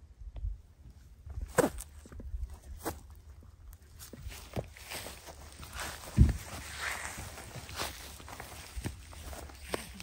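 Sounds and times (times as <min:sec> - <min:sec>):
footsteps on dry grass and stones: 0:00.8 - 0:10.0.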